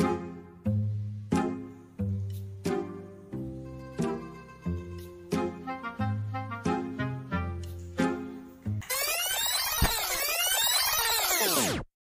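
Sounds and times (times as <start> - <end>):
synthesizer tones sliding up and down: 8.8 - 11.9.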